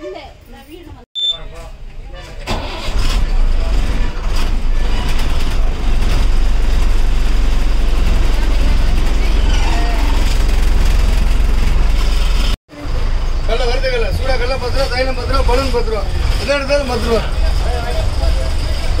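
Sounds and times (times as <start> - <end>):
diesel bus engine starting and idling: 1.5 - 19.0.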